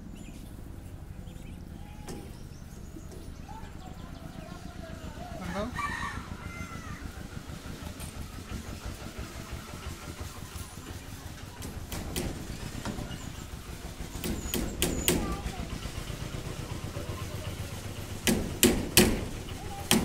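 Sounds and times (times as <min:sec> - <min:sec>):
rooster crowing: 0:05.4 - 0:07.2
sharp knocks: 0:11.6 - 0:13.3, 0:14.1 - 0:15.6, 0:18.2 - 0:20.0.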